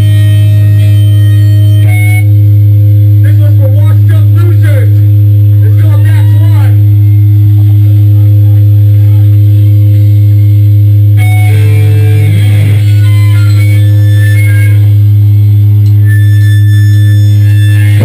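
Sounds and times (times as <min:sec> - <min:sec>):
electric guitar single notes: 0:00.0 - 0:03.2, 0:11.1 - 0:18.0
amplifier drone: 0:00.0 - 0:18.0.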